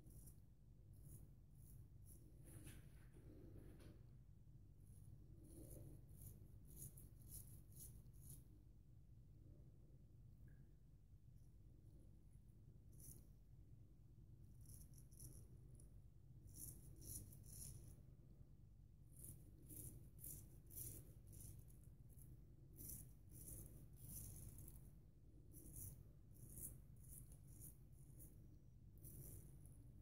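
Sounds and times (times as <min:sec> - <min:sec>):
razor rasping through stubble: 0:19.2 - 0:24.9, 0:25.5 - 0:28.3.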